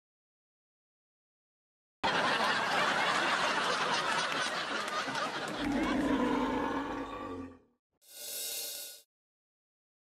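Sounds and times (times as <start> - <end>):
bull-like bellowing roar: 5.6 - 7.6.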